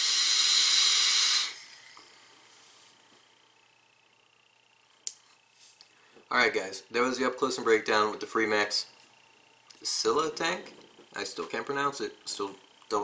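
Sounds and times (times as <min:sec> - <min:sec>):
vape airy hiss: 0:00.0 - 0:03.1.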